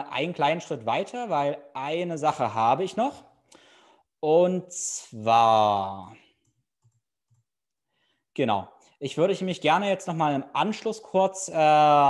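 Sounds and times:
person speaking: 0.0s - 3.4s, 4.2s - 6.8s.

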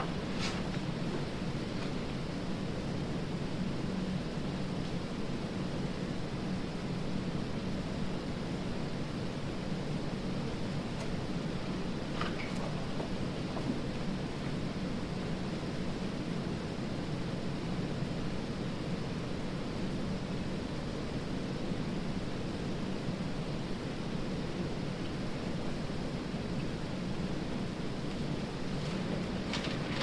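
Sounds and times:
low rumbling background noise: 0.0s - 30.0s.

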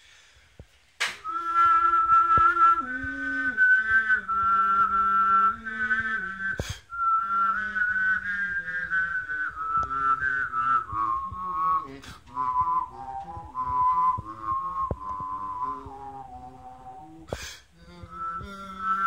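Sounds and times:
sharp click: 1.0s - 1.2s
person whistling melody: 1.0s - 19.0s
low sustained voiced tone: 1.2s - 19.0s.

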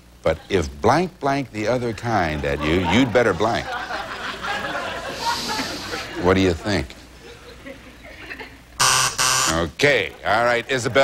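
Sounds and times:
game-show buzzer: 8.8s - 9.7s.

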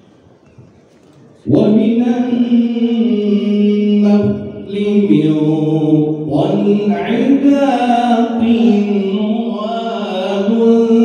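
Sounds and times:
man chanting through loudspeakers: 1.4s - 11.0s.

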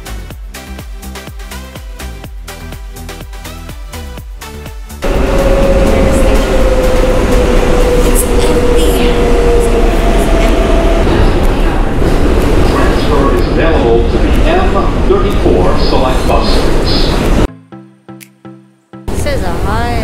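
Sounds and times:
background music: 0.0s - 20.0s
subway car rumble and rattle: 5.0s - 17.5s, 19.1s - 20.0s.

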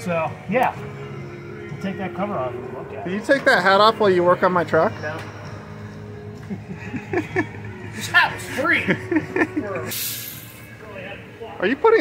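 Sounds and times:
laughter: 6.4s - 8.0s, 8.7s - 9.9s
short hiss: 9.9s - 10.6s.

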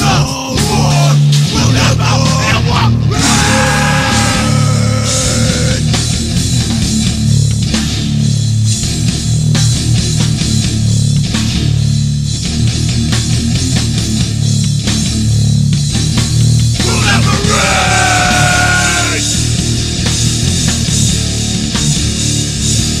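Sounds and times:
distorted guitars and bass chugging: 0.0s - 23.0s
pounding drums: 16.8s - 19.4s.

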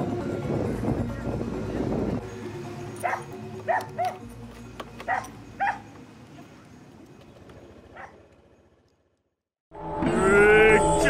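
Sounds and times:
backing music track: 0.0s - 7.8s, 9.7s - 11.0s
dog barking: 3.0s - 4.2s, 5.1s - 5.9s, 7.9s - 8.2s.

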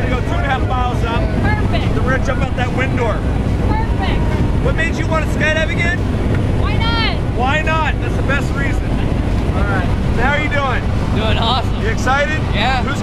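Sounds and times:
plane engine and propeller drone: 0.0s - 13.0s.

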